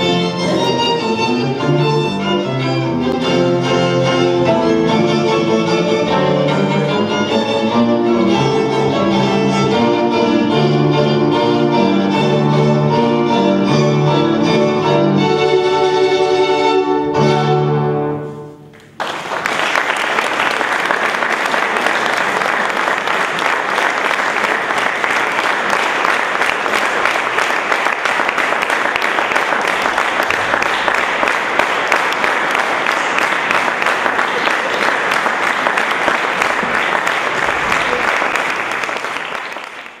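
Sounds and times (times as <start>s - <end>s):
audience applauding: 0.0s - 1.8s, 18.7s - 40.0s.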